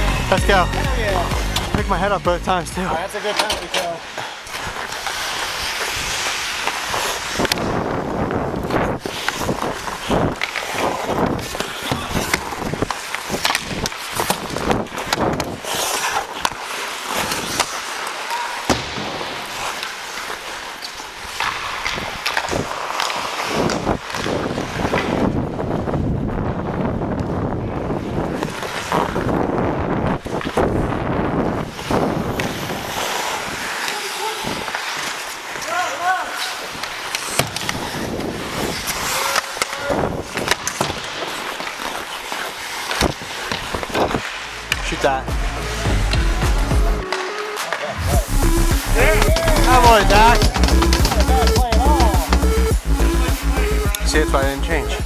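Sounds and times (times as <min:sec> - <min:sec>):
hockey sticks and puck clacking: 0:02.9 - 0:25.4, 0:26.8 - 0:29.6, 0:30.2 - 0:30.8, 0:31.4 - 0:46.2, 0:47.0 - 0:48.0, 0:49.0 - 0:52.6
ice skate blades scraping: 0:02.9 - 0:25.9, 0:27.9 - 0:45.8, 0:48.8 - 0:52.6
voices calling out: 0:45.5 - 0:55.0.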